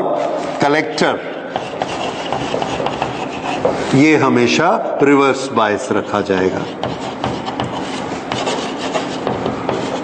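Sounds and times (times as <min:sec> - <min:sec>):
chalk scratching on chalkboard: 0:01.5 - 0:04.2, 0:05.5 - 0:10.0.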